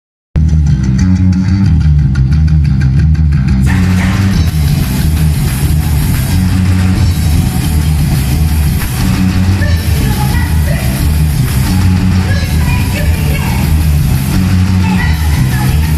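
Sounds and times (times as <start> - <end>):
bass guitar: 0.4 - 15.9
drums: 0.4 - 15.9
electric guitar: 0.4 - 15.9
punk rock band playing live: 3.5 - 15.9.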